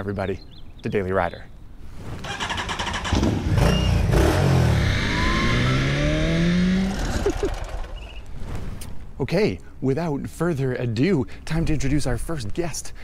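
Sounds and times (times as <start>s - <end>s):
motorcycle engine accelerating: 2.3s - 8.2s.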